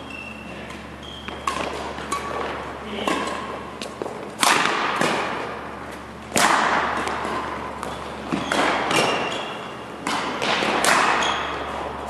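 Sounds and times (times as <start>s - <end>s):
racket striking shuttlecock: 0.7s - 12.0s.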